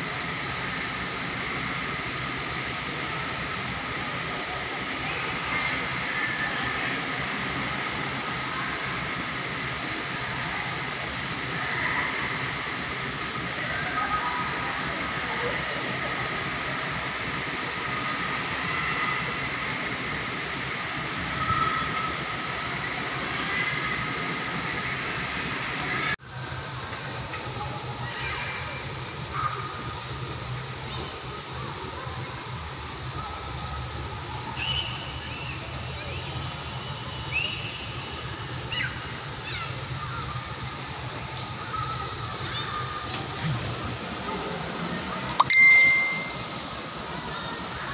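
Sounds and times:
steady background hum: 0:00.0 - 0:47.9
distant voices: 0:25.8 - 0:47.9.

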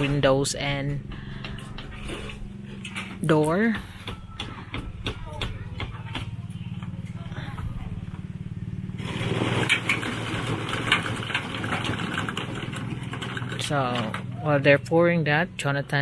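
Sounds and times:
small engine humming: 0:00.8 - 0:16.0
rough noise with clicks and knocks: 0:09.0 - 0:14.2.

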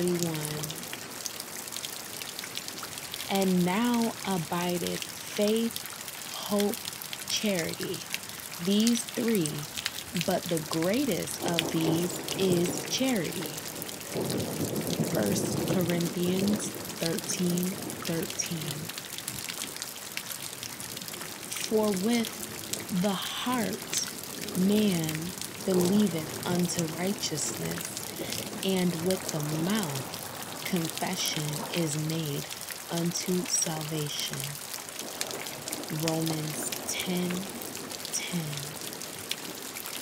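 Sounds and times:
steady rain: 0:00.0 - 0:40.0
water patters and splashes: 0:00.0 - 0:40.0.

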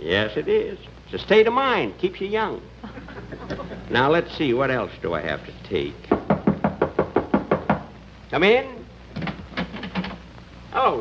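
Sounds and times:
knuckles knocking on door: 0:06.1 - 0:07.9.

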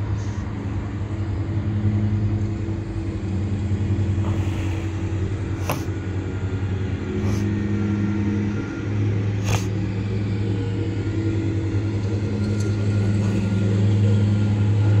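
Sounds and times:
vehicle motor humming: 0:00.0 - 0:15.0.

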